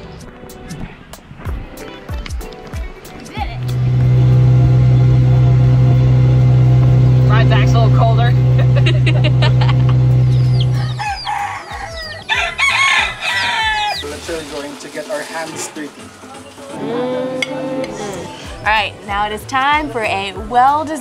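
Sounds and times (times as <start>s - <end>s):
boat engine droning: 3.5s - 11.5s
rooster crowing: 9.1s - 14.0s
chickens clucking: 9.9s - 14.2s.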